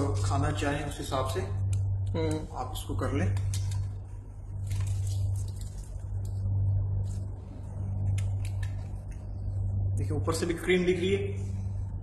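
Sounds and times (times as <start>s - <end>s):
steady low hum: 0.0s - 12.0s
pastry cones crackling: 1.7s - 9.7s.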